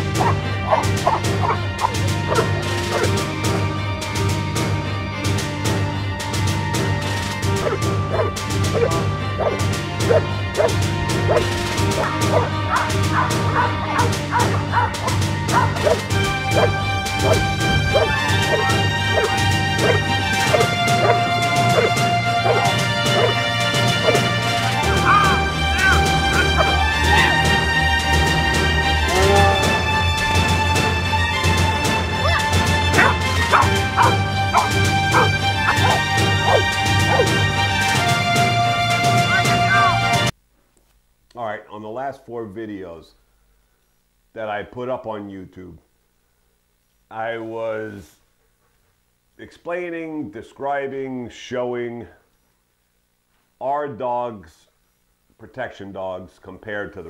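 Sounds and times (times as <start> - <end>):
background music: 0.0 - 40.4
dog barking: 0.2 - 3.2, 7.6 - 23.4, 24.0 - 24.3, 25.0 - 27.3, 33.0 - 37.4.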